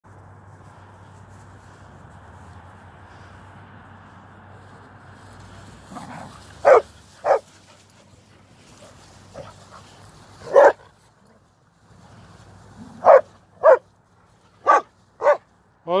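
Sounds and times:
dog barking: 6.1 - 7.5, 10.4 - 10.9, 13.0 - 13.9, 14.6 - 15.4.

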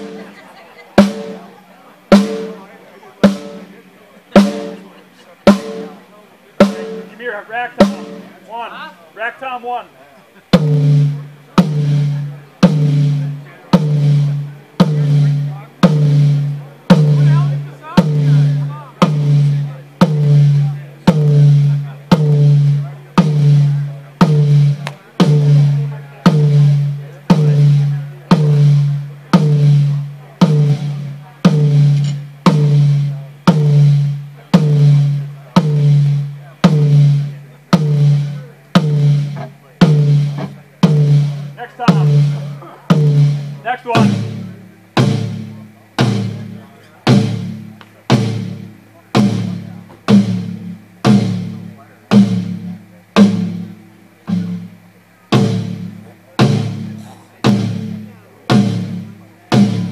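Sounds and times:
rack tom drum hits: 2.1 - 6.0, 6.6 - 8.7, 10.5 - 59.9.

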